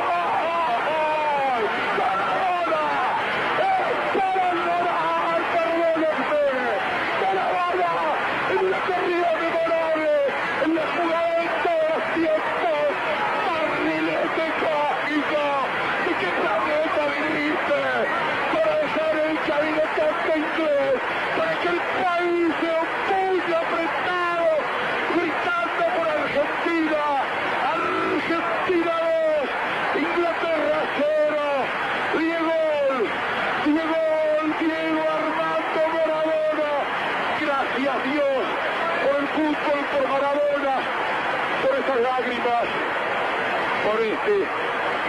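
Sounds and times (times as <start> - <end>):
man shouting commentary: 0.0 - 40.8.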